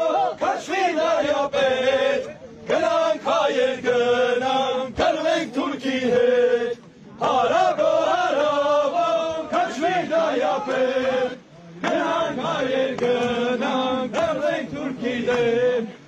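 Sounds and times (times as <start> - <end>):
men chanting in unison: 0.0 - 16.0.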